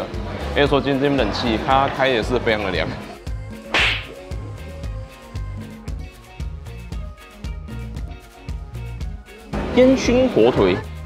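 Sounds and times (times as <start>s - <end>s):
background music with steady beat: 0.0s - 11.0s
short loud swish: 3.7s - 4.2s.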